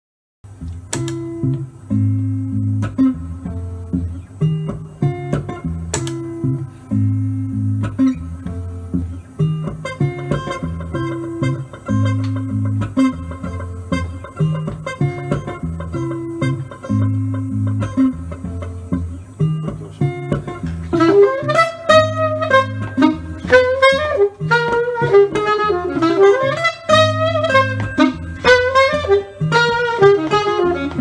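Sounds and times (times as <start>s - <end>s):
electric guitar riff: 0.5s - 31.0s
higher guitar notes: 0.5s - 31.0s.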